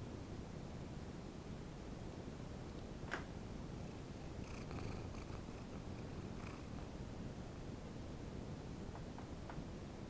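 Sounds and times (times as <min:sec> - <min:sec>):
cat purring: 0:03.7 - 0:07.2.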